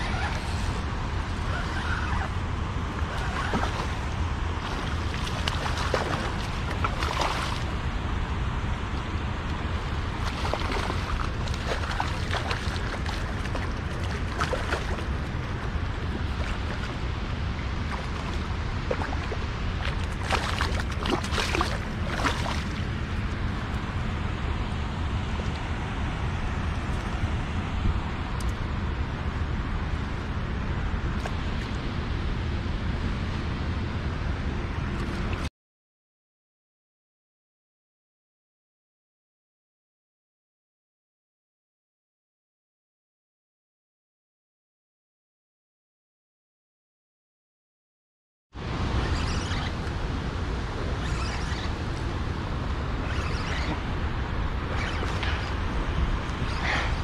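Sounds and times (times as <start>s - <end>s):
wind buffeting microphone: 0.0s - 35.5s, 48.6s - 57.0s
lapping water: 10.2s - 22.9s, 54.7s - 57.0s
fish splashing at surface: 18.9s - 22.8s.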